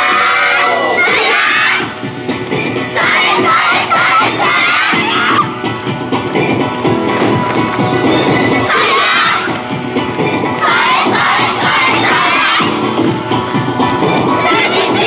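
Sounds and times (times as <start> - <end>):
dance music: 0.0 - 15.0.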